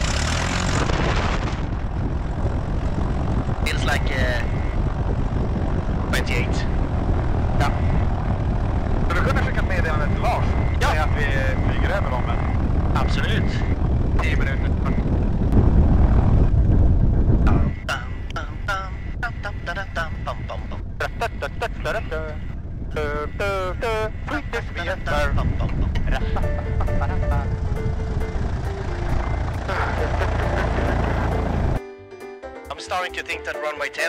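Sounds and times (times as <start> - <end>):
piston engine drone: 0.0 - 31.8.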